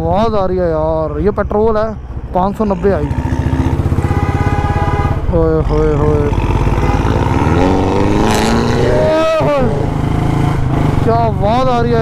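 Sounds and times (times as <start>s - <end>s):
car engine accelerating: 1.1s - 12.0s.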